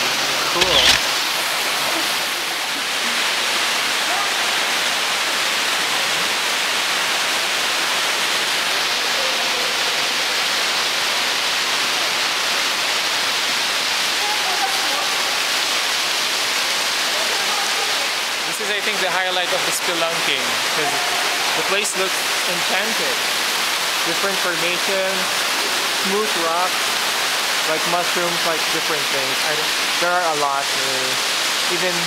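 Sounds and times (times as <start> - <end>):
flowing water rushing: 0.0 - 32.0.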